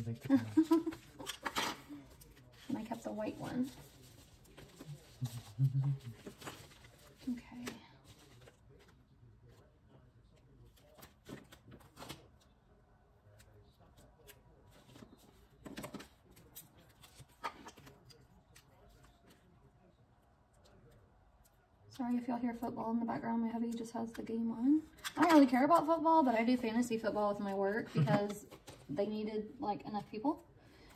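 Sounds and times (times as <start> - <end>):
paper rustling: 0.4 - 9.0.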